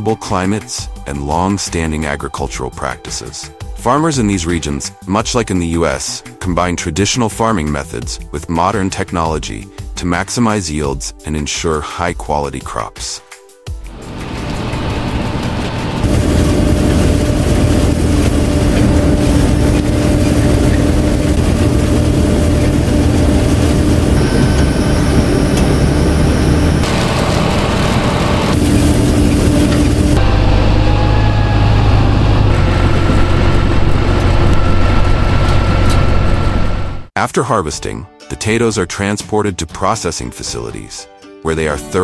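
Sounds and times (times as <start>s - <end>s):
tractor and harvester engines: 14.0s - 37.1s.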